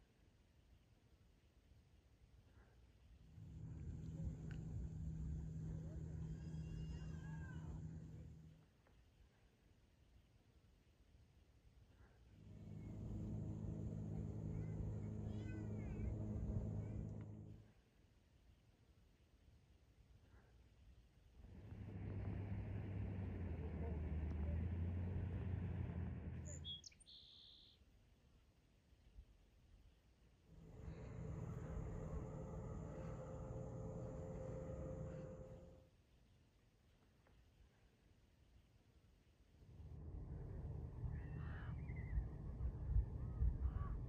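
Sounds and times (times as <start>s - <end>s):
low motor hum: 2.5s - 9.4s, 11.9s - 17.9s, 21.3s - 27.4s, 30.4s - 36.0s, 39.6s - 44.0s.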